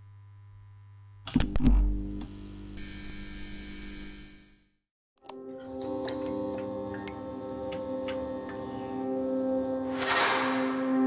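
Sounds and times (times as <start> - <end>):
neon light humming and buzzing: 0.0 - 4.7, 6.0 - 9.9.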